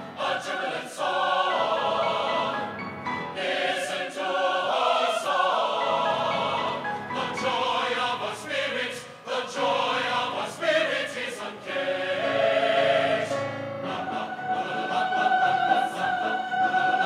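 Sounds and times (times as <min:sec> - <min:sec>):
mixed choir singing: 0:00.0 - 0:17.0.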